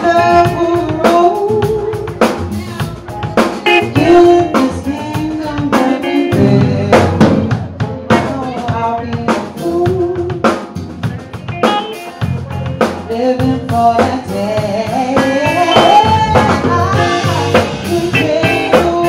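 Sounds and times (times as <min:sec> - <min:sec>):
drum kit beat: 0:00.0 - 0:19.0
live band music: 0:00.0 - 0:19.0.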